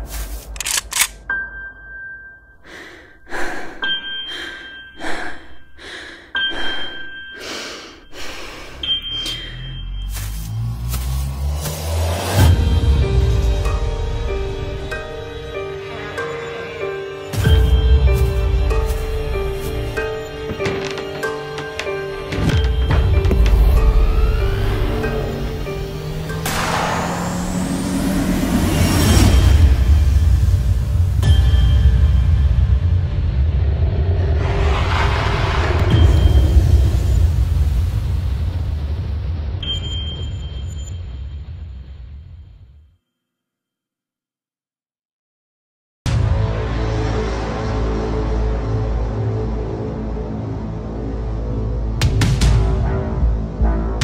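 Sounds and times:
sharp clicks: 0:00.4 - 0:01.2
deep low rumble: 0:32.1 - 0:39.6
noisy swoosh: 0:33.4 - 0:38.6.

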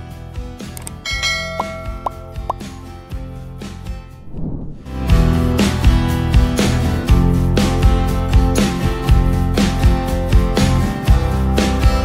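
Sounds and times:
background music: 0:00.0 - 0:04.2, 0:04.9 - 0:12.0
bright bell-like ding: 0:01.0 - 0:02.7.

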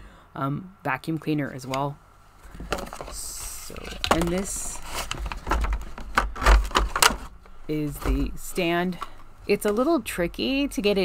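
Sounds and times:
vacuum parts shifting in cardboard box: 0:02.5 - 0:09.1.

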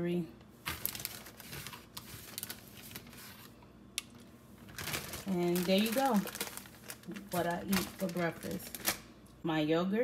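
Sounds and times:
crinkling rustle: 0:00.6 - 0:09.1.

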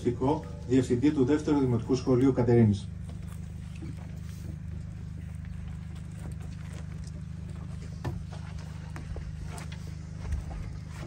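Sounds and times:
steady low hum: 0:00.0 - 0:11.0
footsteps: 0:02.9 - 0:11.0.

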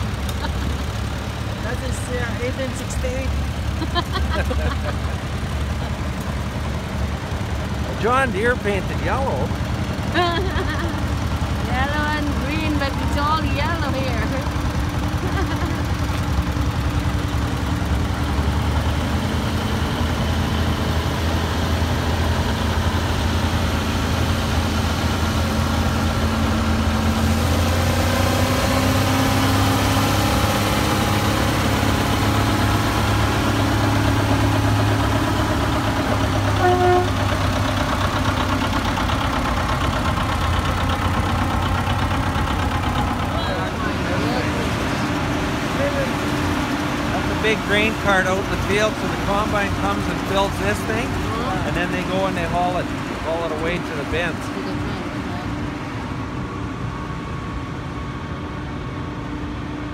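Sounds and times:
tractor engines droning: 0:00.0 - 0:59.9
brief horn toot: 0:36.6 - 0:37.2.

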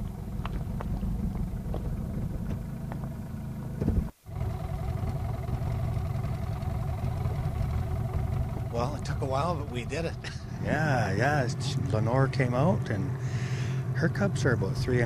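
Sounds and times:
boat motor idling: 0:00.0 - 0:15.0.

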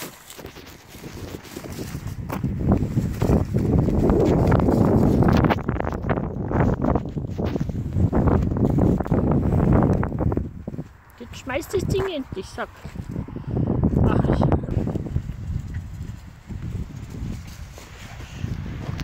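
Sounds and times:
rustling: 0:00.0 - 0:11.4, 0:15.2 - 0:19.0
footsteps on grass and gravel: 0:00.0 - 0:13.2
wind buffeting microphone: 0:00.0 - 0:19.0.

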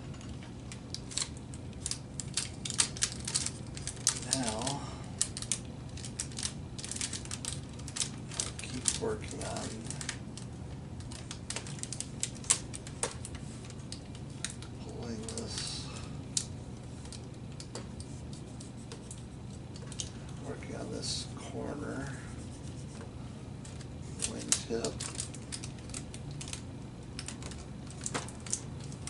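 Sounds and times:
steady low hum: 0:00.0 - 0:29.0
plastic film crackling: 0:00.6 - 0:20.2, 0:23.6 - 0:29.0.

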